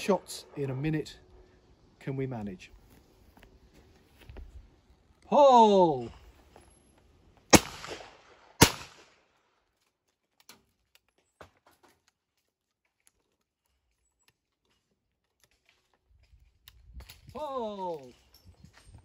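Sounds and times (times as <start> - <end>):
shotgun shots: 7.5 - 9.2.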